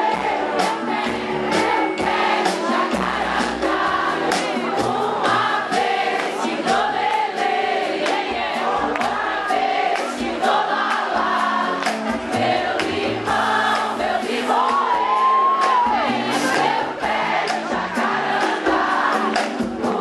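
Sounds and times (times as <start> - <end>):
congas: 0.0 - 20.0
live band upbeat groove: 0.0 - 20.0
many voices singing together: 0.0 - 20.0.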